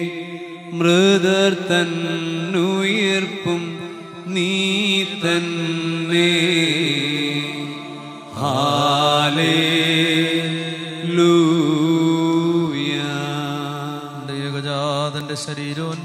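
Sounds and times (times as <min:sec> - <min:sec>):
person chanting: 0:00.0 - 0:16.0.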